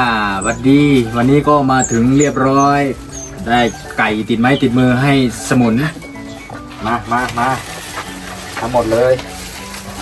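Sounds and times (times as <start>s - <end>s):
soft background music: 0.0s - 10.0s
plastic bag crinkling: 6.8s - 10.0s.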